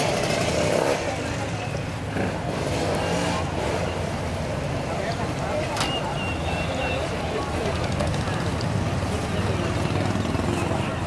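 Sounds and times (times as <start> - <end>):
people talking: 0.5 - 11.0.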